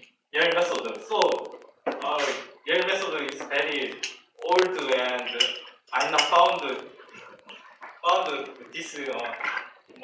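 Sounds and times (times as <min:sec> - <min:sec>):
man talking into microphone: 0:00.4 - 0:09.6.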